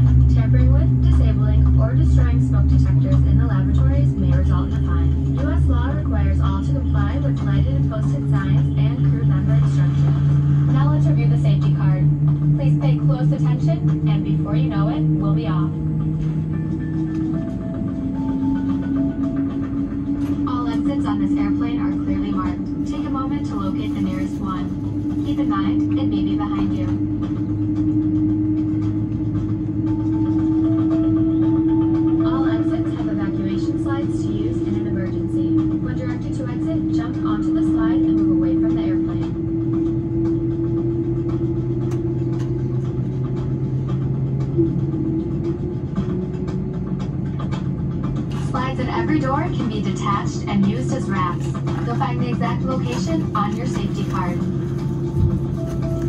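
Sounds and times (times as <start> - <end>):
aircraft cabin drone: 0.0 - 56.0
music: 0.0 - 56.0
indistinct voices: 48.4 - 54.9.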